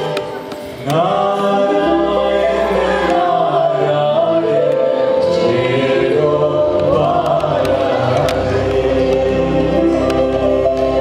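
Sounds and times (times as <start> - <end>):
cello: 0.0 - 11.0.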